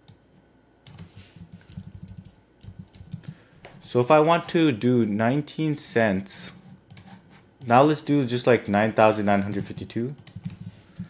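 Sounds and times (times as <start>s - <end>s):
computer keyboard keys tapping: 0.8s - 3.4s, 8.6s - 11.0s.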